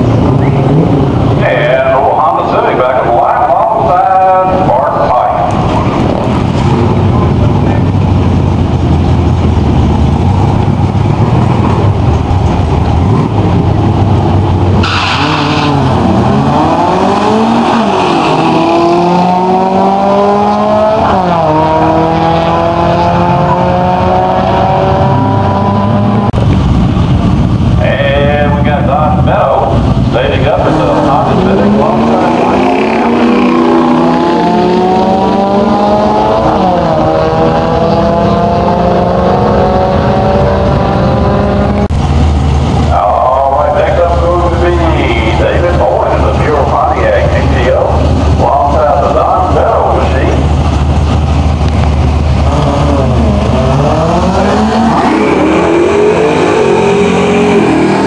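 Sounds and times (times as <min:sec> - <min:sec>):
engine drone: 0:00.0 - 0:58.0
race car accelerating: 0:00.0 - 0:58.0.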